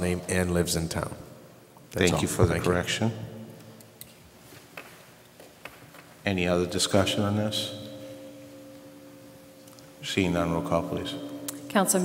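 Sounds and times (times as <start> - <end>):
faint two-tone hum: 0.0 - 12.0.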